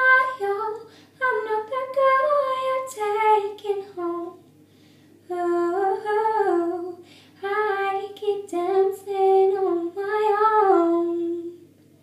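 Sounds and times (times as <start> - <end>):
woman singing unaccompanied: 0.0 - 4.4, 5.3 - 11.6
woman taking a breath: 7.0 - 7.4.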